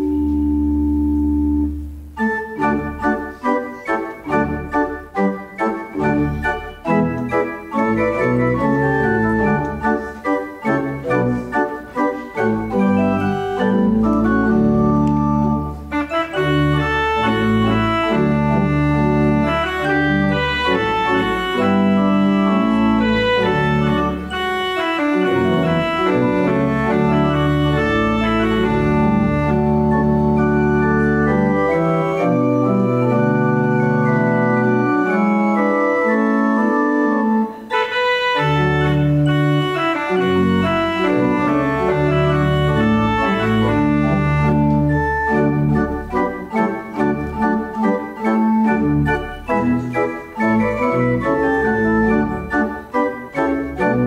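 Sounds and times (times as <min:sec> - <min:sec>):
organ playing held chords: 0:00.0 - 0:54.0.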